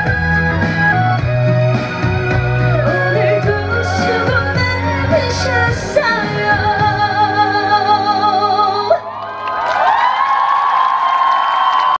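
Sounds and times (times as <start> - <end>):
live band accompaniment: 0.0 - 9.0
woman singing with vibrato: 2.7 - 9.1
audience whooping and cheering: 8.9 - 12.0.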